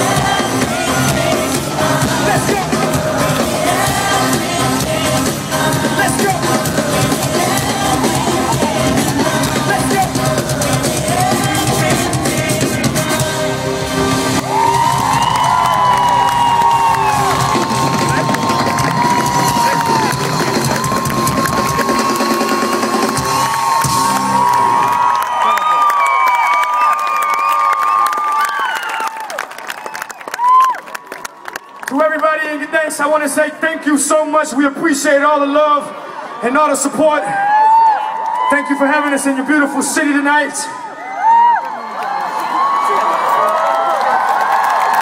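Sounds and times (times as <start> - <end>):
live band playing: 0.0 - 25.0
crowd cheering and screaming: 0.0 - 32.0, 35.3 - 45.0.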